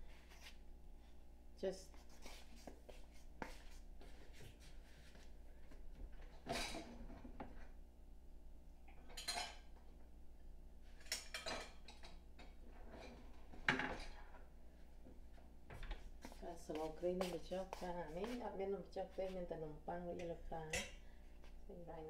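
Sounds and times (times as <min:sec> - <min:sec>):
dishes and utensils clinking: 0:09.0 - 0:09.7, 0:11.0 - 0:12.2.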